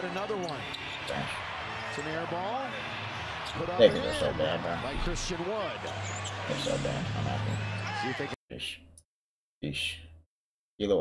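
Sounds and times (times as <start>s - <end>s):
arena crowd noise: 0.0s - 8.4s.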